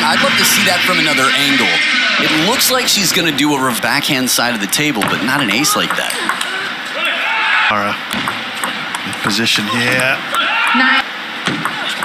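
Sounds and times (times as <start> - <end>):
ball bouncing on table: 5.0 - 6.5, 8.1 - 9.3, 11.4 - 12.0
table tennis ball hit by bats: 5.0 - 7.2, 8.1 - 9.3, 11.4 - 12.0.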